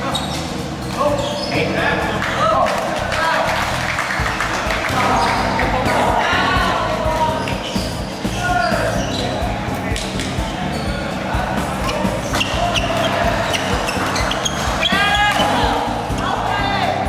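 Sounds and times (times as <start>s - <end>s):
voices echoing in hall: 0.0s - 17.0s.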